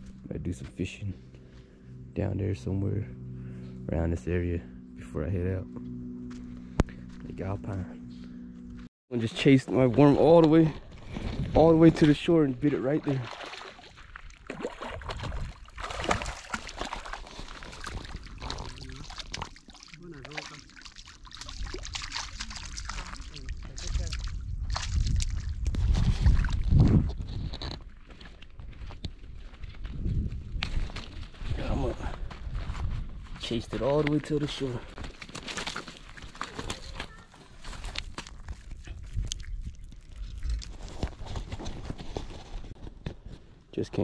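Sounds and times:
water sloshing at shoreline: 10.8 - 26.7.

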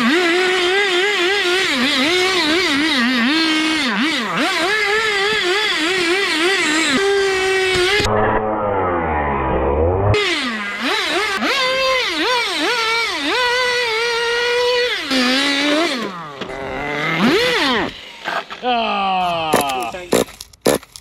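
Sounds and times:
rc car engine revving: 0.0 - 18.7.

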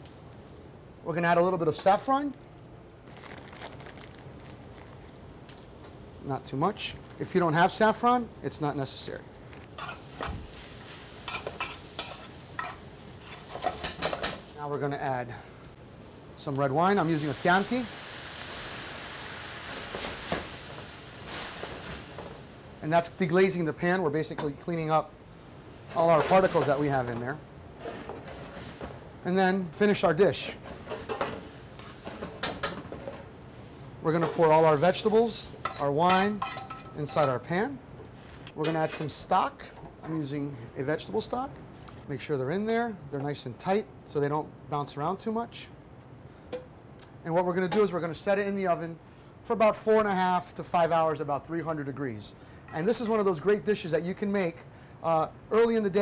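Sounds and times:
kitchen background: 1.0 - 25.1, 25.7 - 43.7
soft crackles: 3.0 - 5.7, 6.3 - 7.4
vegetables sizzling in a pan: 9.0 - 14.7, 15.9 - 23.2, 25.5 - 32.8, 33.6 - 36.8, 38.1 - 38.5
cookware clinking: 35.6 - 37.4.

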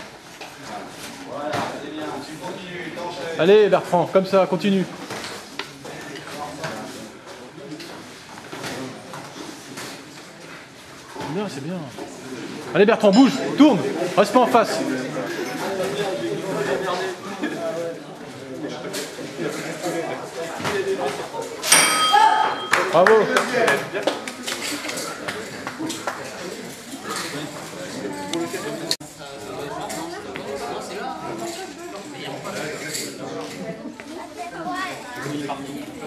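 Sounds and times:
bell ringing: 13.1 - 13.8, 21.7 - 23.0.

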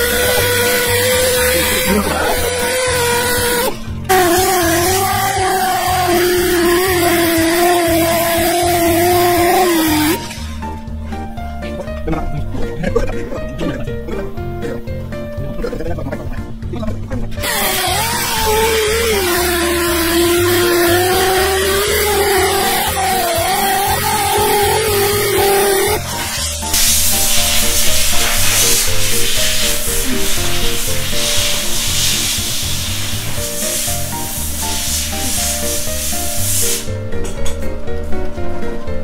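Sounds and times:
belt sander whining on metal: 0.0 - 11.3, 17.4 - 36.7
background music with beat: 0.0 - 39.0
loud steady hiss: 17.4 - 37.1.

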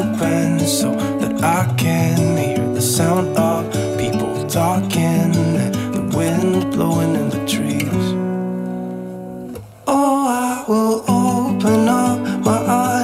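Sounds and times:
strummed acoustic guitar song: 0.0 - 13.0.

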